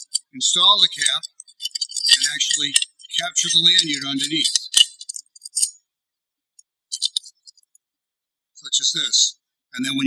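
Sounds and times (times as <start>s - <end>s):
metal cap clicking and clinking: 0.9s - 5.7s.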